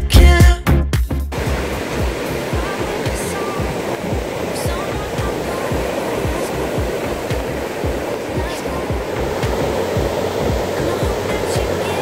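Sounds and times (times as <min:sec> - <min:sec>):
song: 0:00.0 - 0:12.0
ocean surf breaking: 0:01.3 - 0:12.0.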